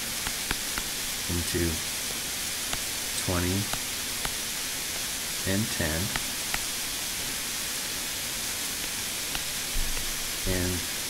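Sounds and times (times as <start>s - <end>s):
steady noise floor hiss: 0.0s - 11.0s.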